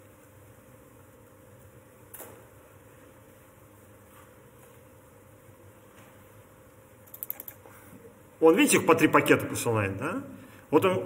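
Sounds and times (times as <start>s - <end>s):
computer keyboard keystrokes: 7.1s - 7.6s.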